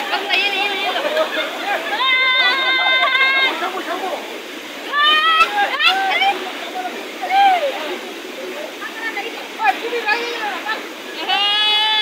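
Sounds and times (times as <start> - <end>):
men calling out: 0.0 - 8.0, 9.6 - 12.0
mountain stream rushing: 0.0 - 12.0.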